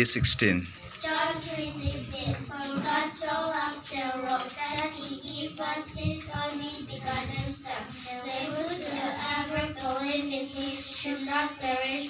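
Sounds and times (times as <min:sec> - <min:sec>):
girls chanting in unison: 0:01.0 - 0:12.0.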